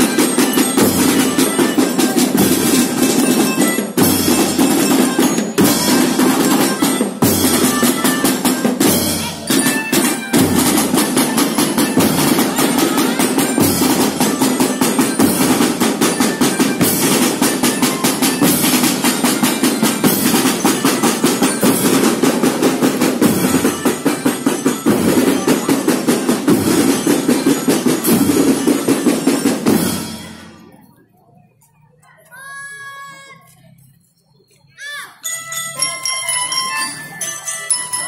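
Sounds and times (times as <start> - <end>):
drum band marching rhythm: 0.0 - 30.7.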